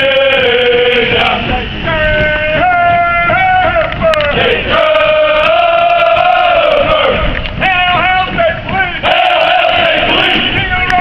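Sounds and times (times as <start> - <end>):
crowd noise: 0.0 - 11.0
men chanting in unison: 0.0 - 11.0.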